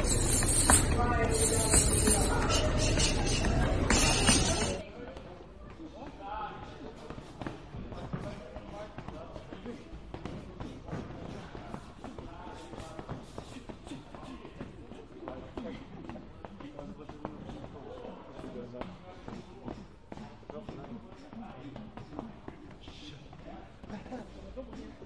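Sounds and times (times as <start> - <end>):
faint voices: 0.0 - 25.0.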